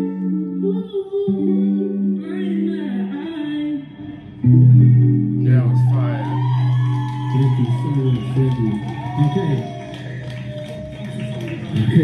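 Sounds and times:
busking guitar music: 0.0 - 7.3.

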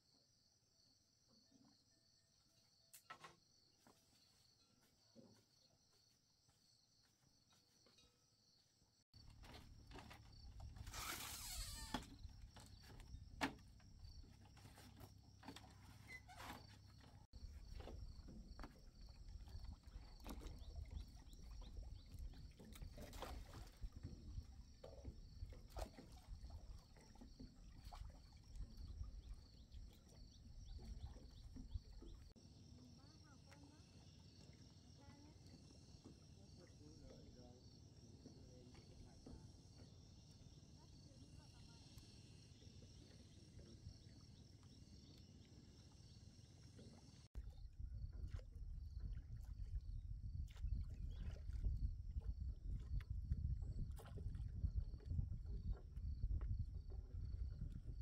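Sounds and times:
insects chirping: 0.1 - 58.0.

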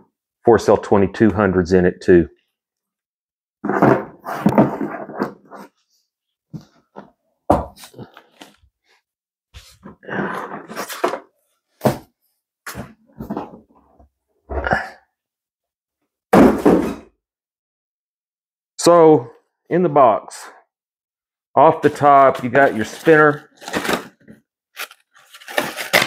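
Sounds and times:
thunks scrapes and rustles: 3.6 - 5.8.

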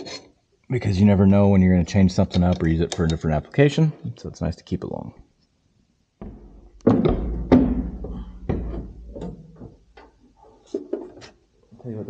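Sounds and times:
knocks thumps and clicks: 6.2 - 10.2.

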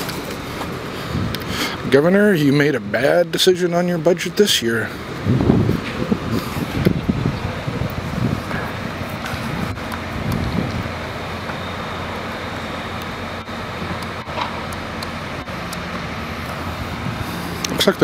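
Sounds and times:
road traffic rumble: 0.0 - 18.0.

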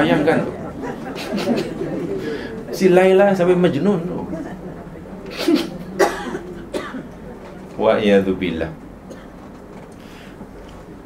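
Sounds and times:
person coughing: 5.3 - 7.2.

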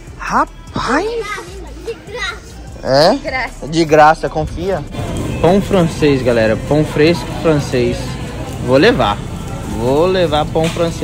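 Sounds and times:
background music: 0.0 - 11.0
child's voice: 0.8 - 2.7.

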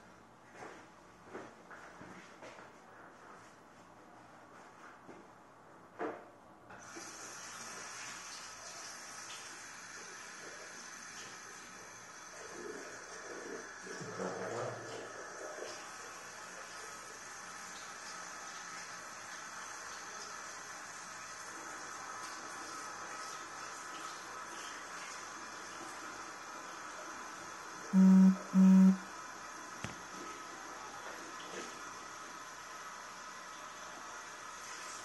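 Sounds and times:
tap water running into washbasin: 6.7 - 14.2, 14.8 - 27.6, 29.8 - 35.0.

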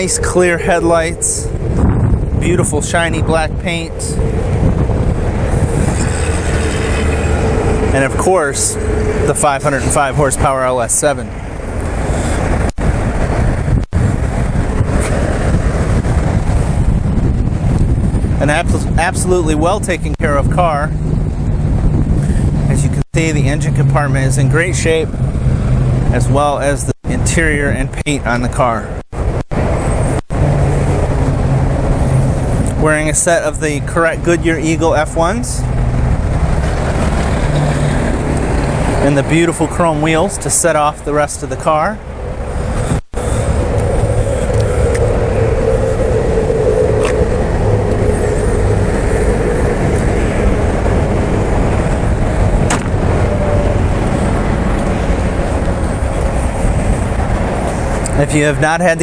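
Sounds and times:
motor vehicle rumble: 0.0 - 59.0.

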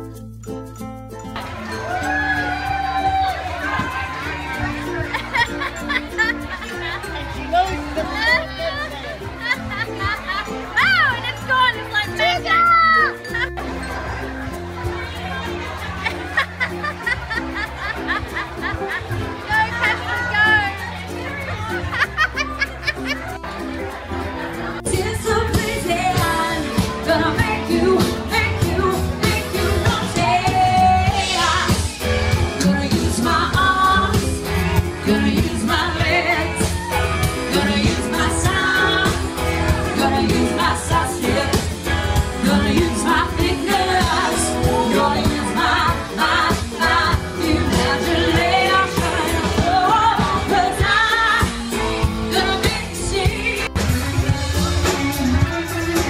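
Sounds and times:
live pop-rock band playing: 0.0 - 56.0
person singing: 24.8 - 56.0.

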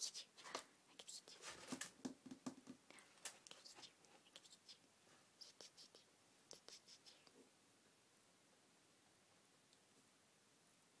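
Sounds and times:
scratching of cat litter: 1.2 - 2.0.

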